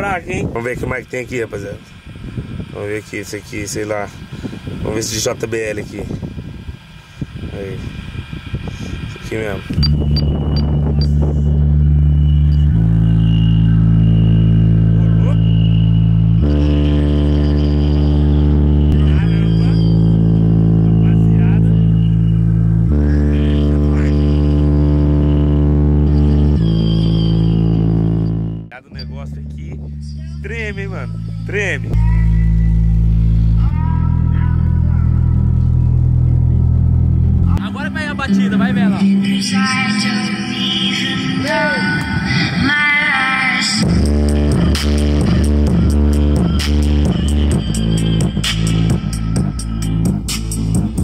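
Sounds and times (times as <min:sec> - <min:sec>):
heavy bass notes through subwoofers: 0:00.0 - 0:51.0.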